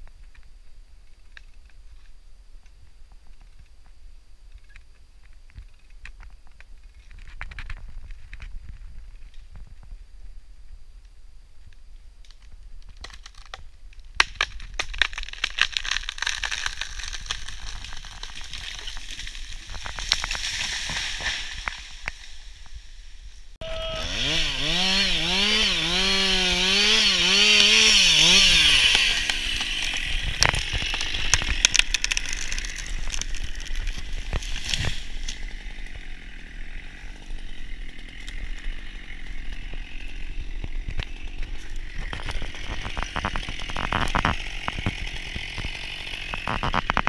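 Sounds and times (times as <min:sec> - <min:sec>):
tree cracking and crashing down: 0:12.3 - 0:22.9, 0:24.2 - 0:47.0
chainsaw cutting wood: 0:14.2 - 0:22.3, 0:23.6 - 0:47.0.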